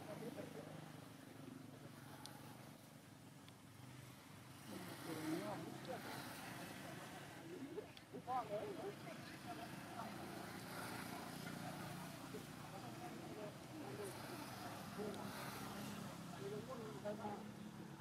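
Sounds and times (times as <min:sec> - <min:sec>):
faint voices talking: 0:00.0 - 0:18.0
outdoor ambience: 0:00.0 - 0:18.0.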